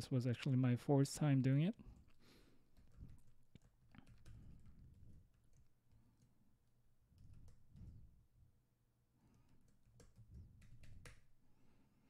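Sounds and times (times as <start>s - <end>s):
computer keyboard keystrokes: 2.8s - 6.3s, 7.1s - 8.0s, 9.5s - 11.3s.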